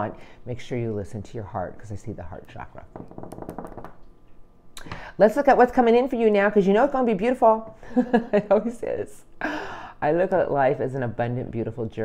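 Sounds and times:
fingernails tapping on table: 0:03.0 - 0:04.0
short breath: 0:04.8 - 0:05.2, 0:09.4 - 0:10.0.

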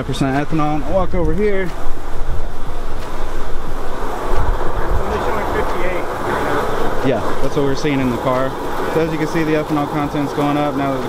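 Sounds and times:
car engine running: 0:00.0 - 0:11.0
loud steady rushing noise: 0:00.0 - 0:11.0.

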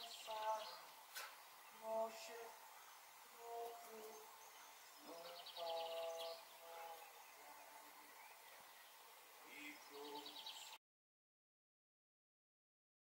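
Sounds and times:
faint bird calls: 0:00.0 - 0:10.8
high bird trill: 0:01.7 - 0:10.8.

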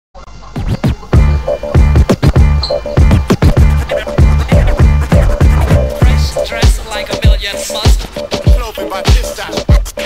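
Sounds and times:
hip hop music: 0:00.2 - 0:10.0
turntable record scratches: 0:00.2 - 0:10.0
heavy bass beat: 0:00.6 - 0:10.0.

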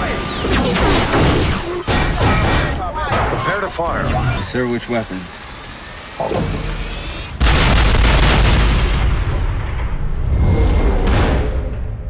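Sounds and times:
huge gun blasts with rumbling tail: 0:07.4 - 0:12.0.

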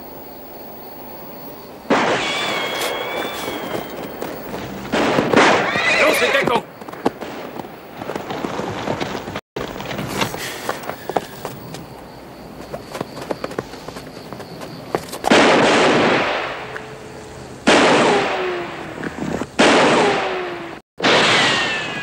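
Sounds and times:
gunshots: 0:01.9 - 0:06.6, 0:15.3 - 0:16.8, 0:17.6 - 0:18.8, 0:19.6 - 0:22.0
horse whinnying: 0:02.1 - 0:04.1, 0:05.4 - 0:06.6.

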